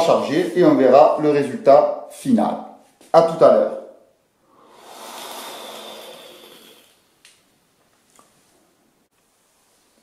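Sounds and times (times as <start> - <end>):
breathy drag on e-cigarette: 4.5 - 7.0.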